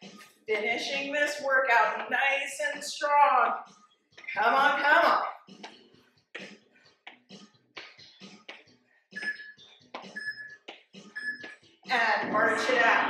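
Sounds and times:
interval timer beeping: 9.2 - 13.0.

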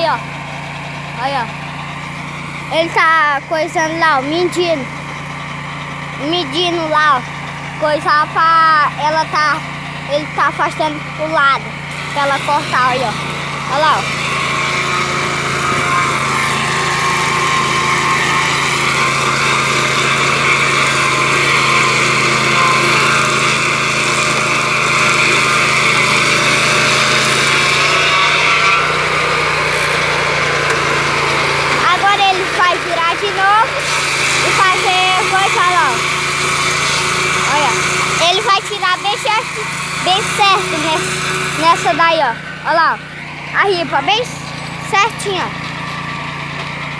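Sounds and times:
sawmill engine sawing log: 0.0 - 46.9.

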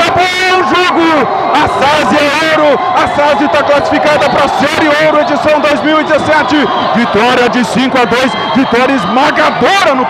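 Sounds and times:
male sports commentator calling loudly: 0.0 - 10.0.

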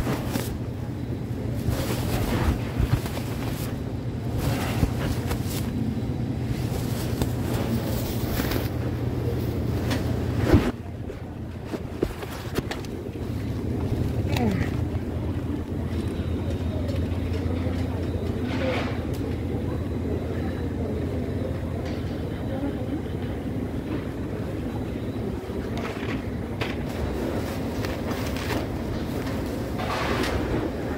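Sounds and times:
faint indistinct voices: 0.0 - 30.9.

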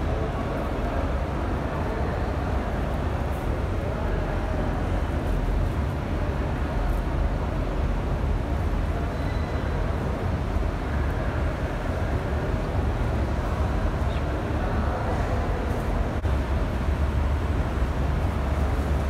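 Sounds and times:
busy indoor hall rumble: 0.0 - 19.0.

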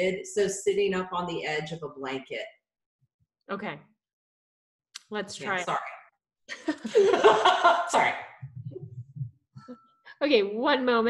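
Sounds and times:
woman laughing: 6.5 - 8.2.

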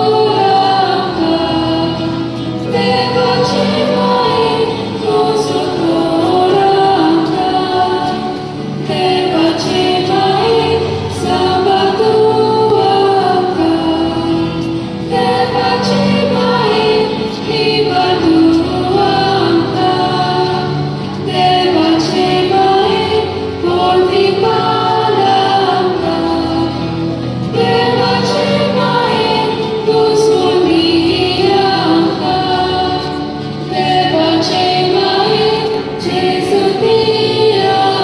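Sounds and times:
choir singing a hymn: 0.0 - 38.0.

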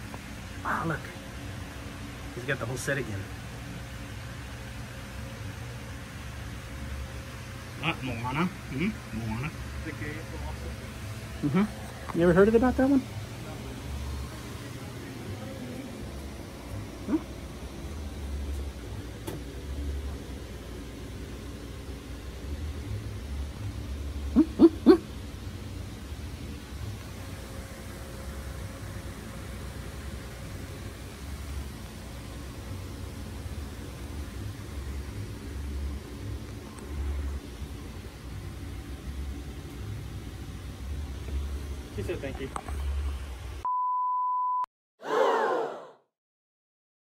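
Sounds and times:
low background hum: 0.0 - 43.7
dog barking: 24.3 - 25.0
censor bleep: 43.6 - 44.7.

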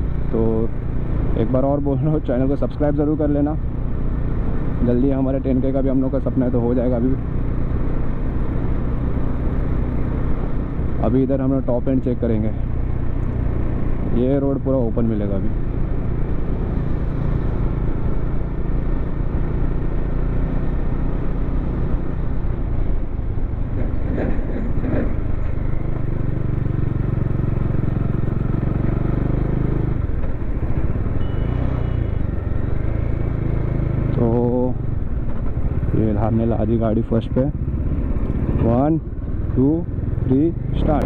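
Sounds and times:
wind and road noise: 0.0 - 41.0
motorcycle engine running: 24.8 - 41.0.

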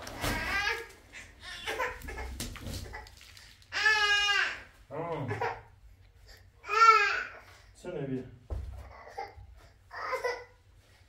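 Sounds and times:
baby crying loudly: 3.7 - 4.7.

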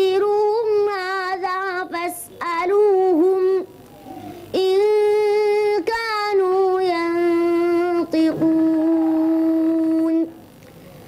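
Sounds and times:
boy chanting melodically: 0.0 - 10.4.

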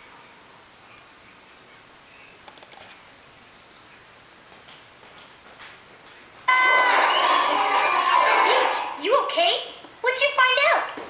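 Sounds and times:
room hum: 0.0 - 11.0
cartoon music through laptop speakers: 6.5 - 9.0.

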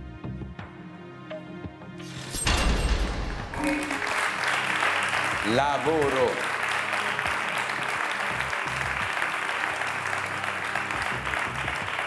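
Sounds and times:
soft game show music: 0.0 - 12.0
audience applause: 3.5 - 12.0.

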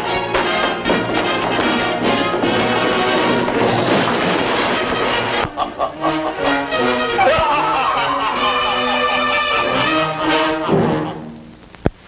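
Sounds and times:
orchestral film score with brass: 0.0 - 11.5.

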